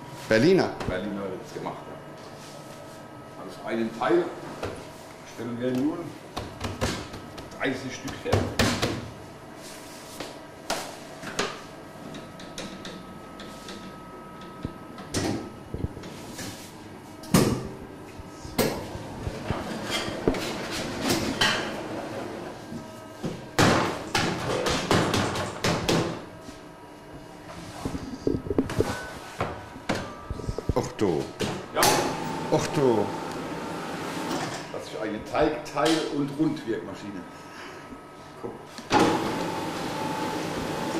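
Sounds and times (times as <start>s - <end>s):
bakery machine knocks and clatter: 6.3s - 9.1s, 23.3s - 26.2s.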